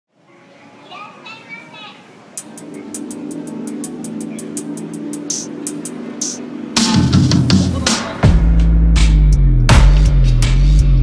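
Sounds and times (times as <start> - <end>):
children playing and calling: 0.2 - 6.8.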